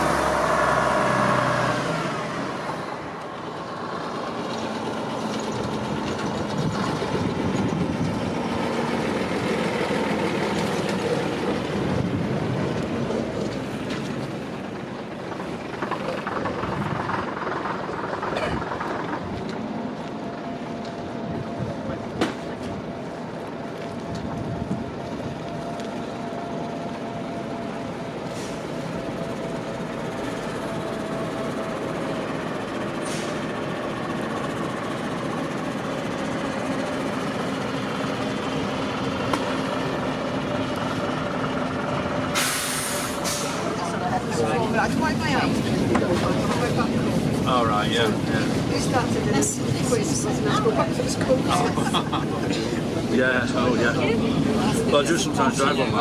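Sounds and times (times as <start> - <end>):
diesel buses running: 0.0 - 56.0
air brake hiss: 28.3 - 28.8, 33.0 - 33.5, 42.3 - 43.7.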